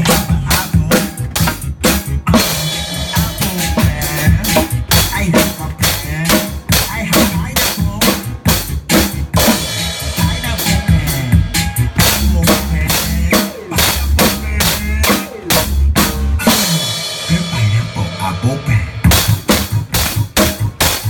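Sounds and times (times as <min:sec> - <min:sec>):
snare drum: 0:00.0 - 0:16.7, 0:19.1 - 0:21.0
bass drum: 0:00.0 - 0:21.0.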